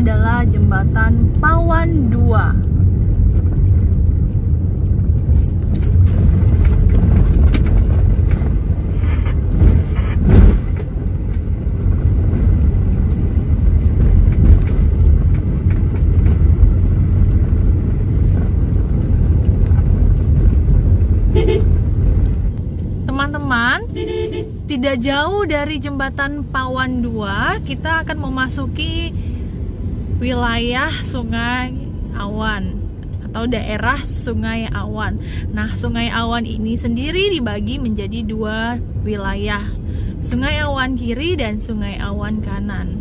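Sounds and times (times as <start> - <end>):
road and engine rumble inside car: 0.0 - 43.0
thump: 9.6 - 10.8.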